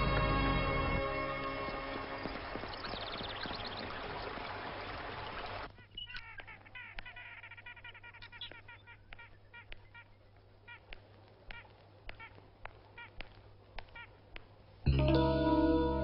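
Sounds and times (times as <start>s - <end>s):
faint birds chirping: 0.0s - 16.0s.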